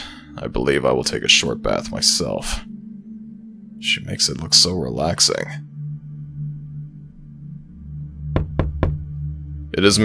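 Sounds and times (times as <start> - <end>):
ambient music drone: 0.0 - 10.0
knocks on a door: 8.3 - 9.1.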